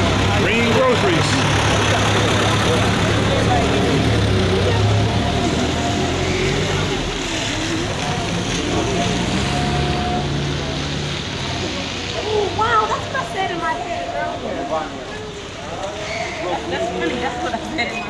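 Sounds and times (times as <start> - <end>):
truck engine running: 0.0 - 11.9
people's voices: 0.0 - 18.0.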